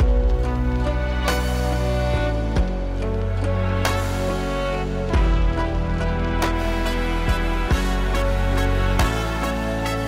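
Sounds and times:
film score held chords: 0.0s - 10.0s.

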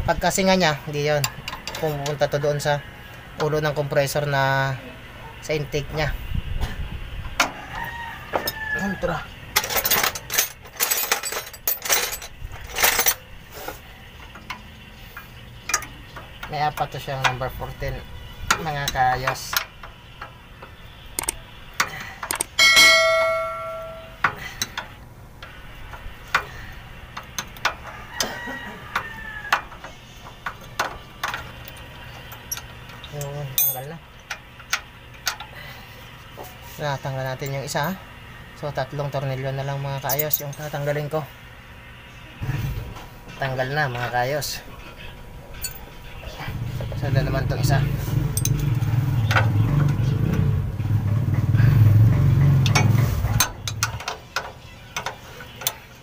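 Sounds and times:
wrenches clinking on metal: 9.6s - 13.2s, 27.2s - 35.5s, 40.0s - 41.0s, 45.6s - 45.9s, 47.6s - 50.0s
bolt squeaking: 15.7s - 22.6s
wrench metallic clicks and taps: 18.5s - 22.6s, 52.6s - 55.8s.

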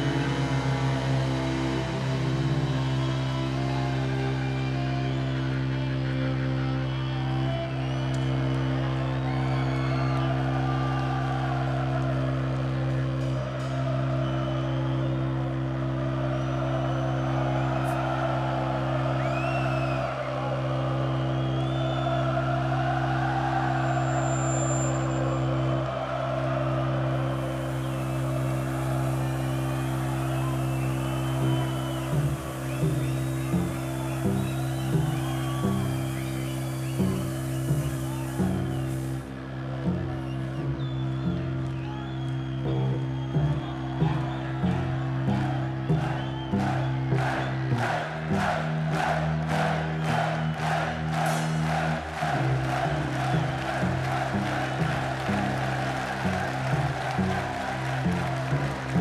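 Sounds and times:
cellos playing low drone: 0.0s - 59.0s
crowd noise: 0.0s - 59.0s
short whistles: 19.2s - 20.2s, 21.1s - 22.2s, 23.8s - 25.5s, 27.6s - 39.0s, 40.3s - 44.4s.

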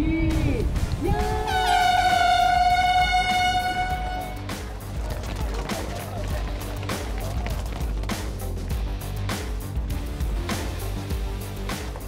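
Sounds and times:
background music with steady beat: 0.0s - 12.0s
air horn blast: 1.4s - 4.6s.

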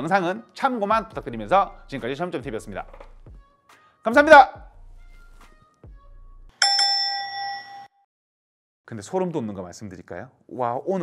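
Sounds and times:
faint background music: 0.0s - 6.3s
bright bell chime: 6.6s - 8.0s.

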